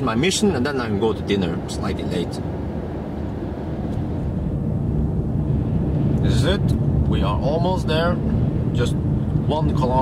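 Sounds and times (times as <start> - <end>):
tyre and road noise in car cabin: 0.0 - 10.0.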